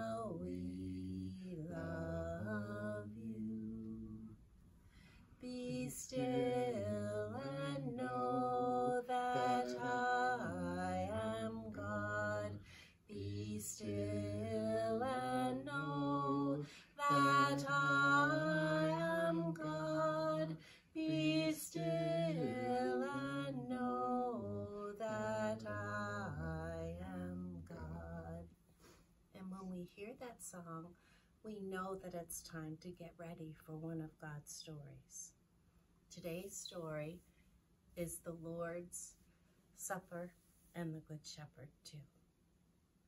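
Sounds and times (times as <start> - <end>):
woman singing unaccompanied: 0.0 - 4.3, 5.4 - 28.5.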